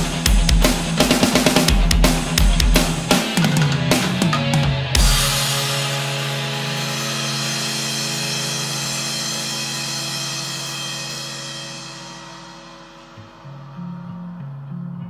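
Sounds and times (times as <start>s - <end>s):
drum hit: 0.0s - 13.3s
crash cymbal wash: 0.0s - 14.4s
held guitar and bass chord: 3.2s - 15.0s.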